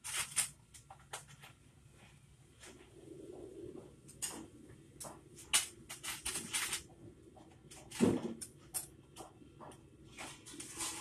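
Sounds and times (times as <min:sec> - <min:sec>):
rustles and clicks of handling: 0:00.0 - 0:02.9.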